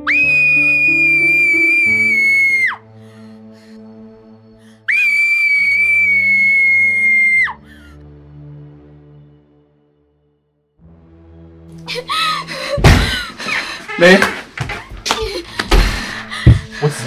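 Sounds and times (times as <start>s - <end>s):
girl screaming: 0.0s - 2.8s, 4.9s - 7.6s
soft background music: 0.0s - 17.0s.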